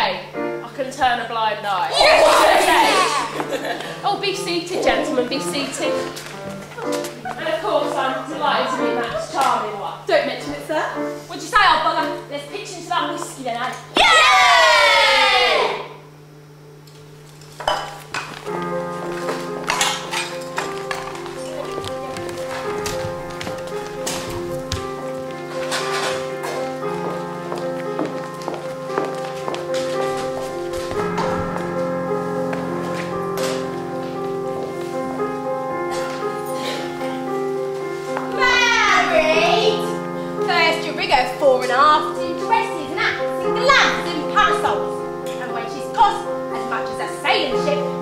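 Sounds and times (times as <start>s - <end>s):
held keyboard chords: 0.0s - 14.0s, 18.0s - 48.0s
tableware clinking: 17.4s - 18.4s, 19.6s - 21.2s.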